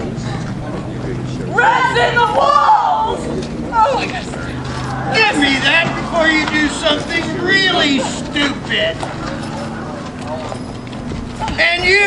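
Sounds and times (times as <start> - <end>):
loud speech: 0.0 - 10.7, 11.3 - 12.0
faint voices: 0.0 - 12.0
outdoor background noise: 0.0 - 12.0.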